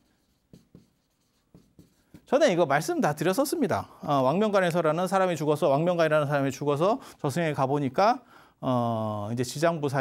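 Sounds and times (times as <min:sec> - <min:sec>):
chalk writing on chalkboard: 0:00.0 - 0:02.4.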